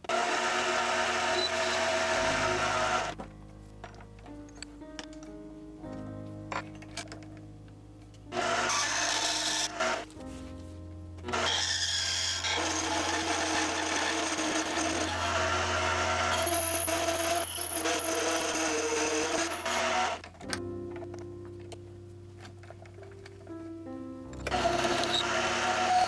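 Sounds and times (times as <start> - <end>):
metal lathe cutting: 0.0 - 3.2, 8.3 - 10.0, 11.3 - 20.2, 24.4 - 26.0.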